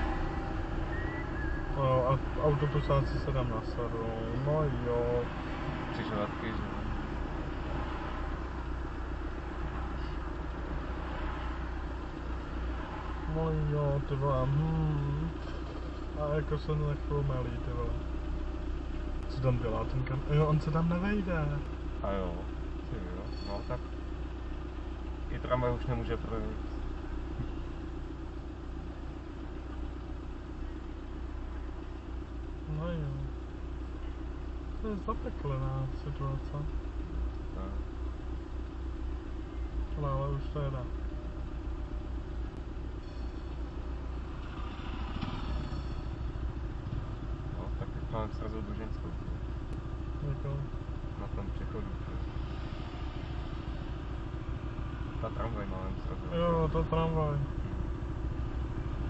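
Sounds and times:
car engine idling: 0.0 - 59.0
city traffic: 0.0 - 59.0
steady low hum: 0.0 - 59.0.

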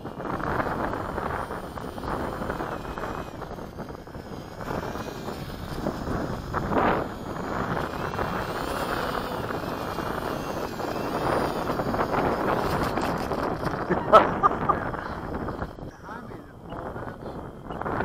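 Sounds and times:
faint whine of aircraft motors: 0.0 - 18.0
wind buffeting microphone: 0.0 - 18.0.

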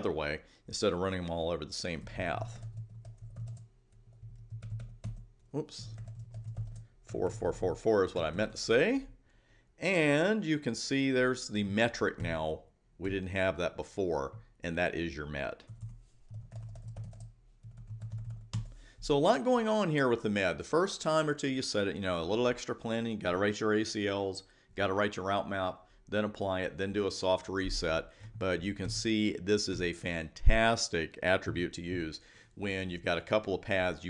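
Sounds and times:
keyboard typing: 2.5 - 6.9, 15.7 - 18.8.

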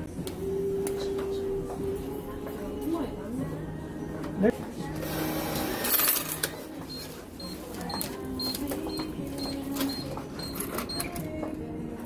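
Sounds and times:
cash machine whirring and clinking: 5.0 - 11.5.

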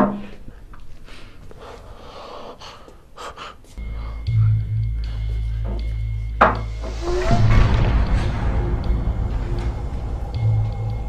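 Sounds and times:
man breathing: 0.3 - 6.3
music with deep bass: 3.8 - 11.0.

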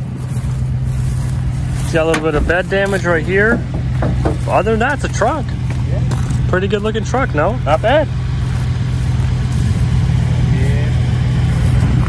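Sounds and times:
pickup engine idling: 0.0 - 12.0.

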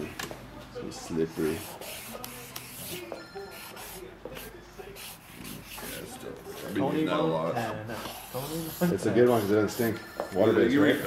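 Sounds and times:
marker scratching on paper: 1.3 - 6.9, 7.9 - 10.0, 10.6 - 11.0.

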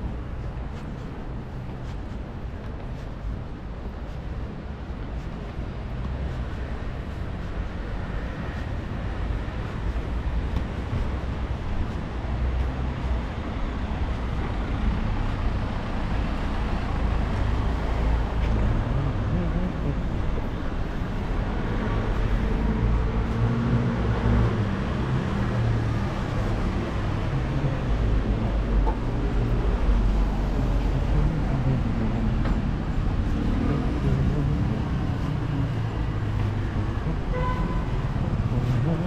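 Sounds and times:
vehicle rumble and hiss: 0.0 - 39.0.

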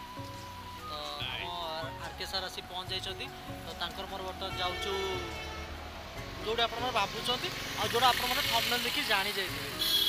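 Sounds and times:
road traffic: 0.0 - 10.0
man talking: 0.9 - 5.4.

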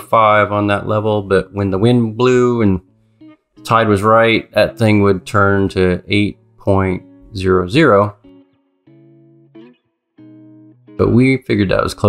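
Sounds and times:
held guitar chord: 0.0 - 12.0.

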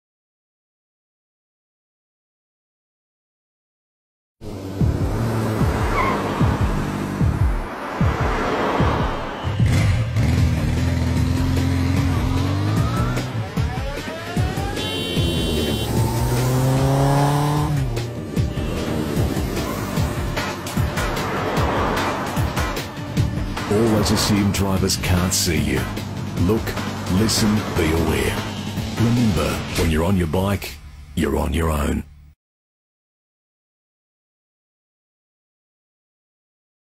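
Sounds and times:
motorcycle engine revving: 4.4 - 23.7, 25.8 - 29.8
car engine revving: 4.4 - 31.2
background music: 4.5 - 32.3.

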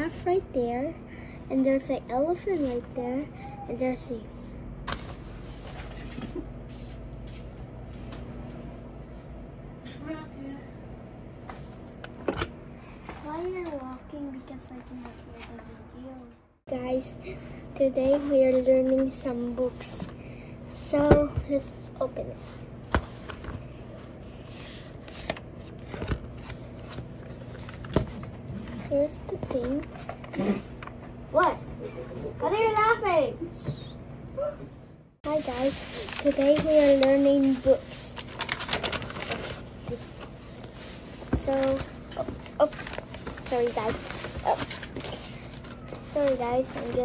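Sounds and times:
low room hum: 0.0 - 47.0
booklet pages rustling: 24.9 - 31.0, 35.3 - 47.0.

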